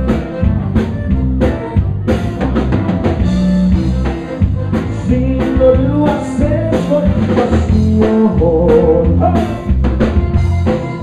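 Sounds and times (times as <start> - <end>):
accordion melody: 0.0 - 11.0
congas: 0.0 - 11.0
drum kit: 0.0 - 11.0
electric bass guitar: 0.0 - 11.0.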